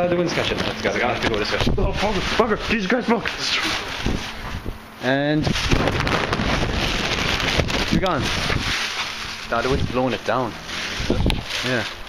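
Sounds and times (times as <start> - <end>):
wind blowing across microphone: 4.0 - 8.8, 10.9 - 11.5.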